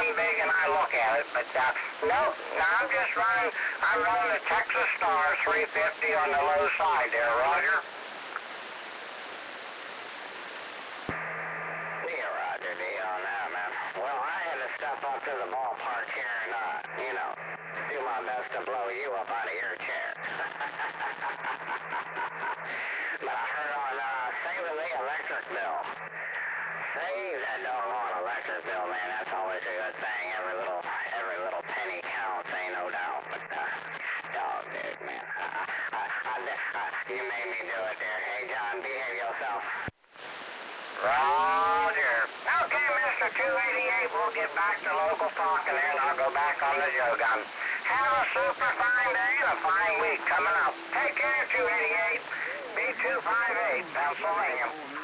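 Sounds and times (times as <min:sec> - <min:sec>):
voice over radio: 0:00.0 - 0:07.9, 0:12.0 - 0:39.9, 0:41.0 - 0:55.0
radio static hiss: 0:00.0 - 0:55.0.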